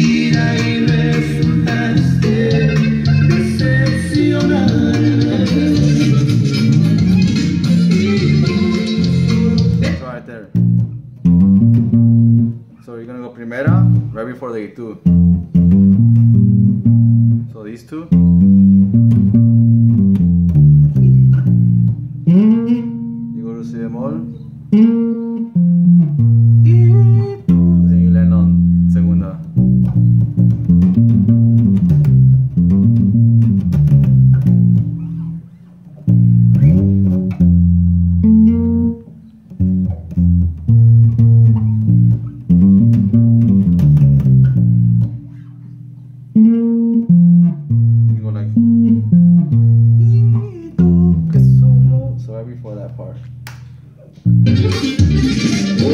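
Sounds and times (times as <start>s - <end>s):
electric bass line plucked: 0.0s - 12.8s, 13.5s - 55.9s.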